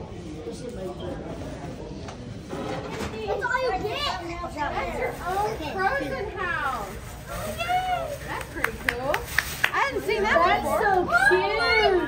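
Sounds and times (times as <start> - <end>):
young children talking: 3.0 - 9.1, 9.7 - 12.0.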